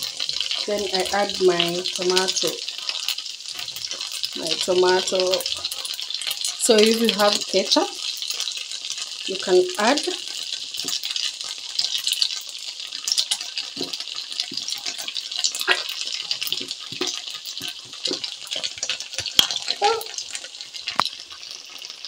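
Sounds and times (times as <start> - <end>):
sauce pouring into pan: 0.0 - 22.0
vegetables sizzling in oil: 0.0 - 22.0.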